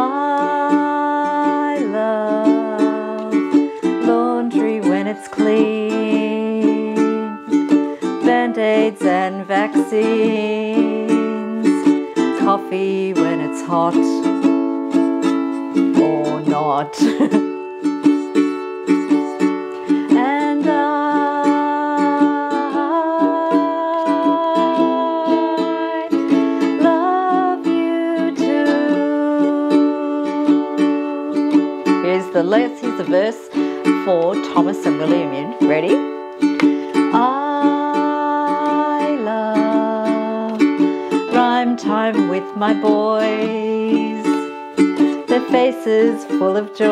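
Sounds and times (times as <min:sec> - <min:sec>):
ukulele strumming chords: 0:00.0 - 0:46.9
woman singing: 0:00.0 - 0:46.9.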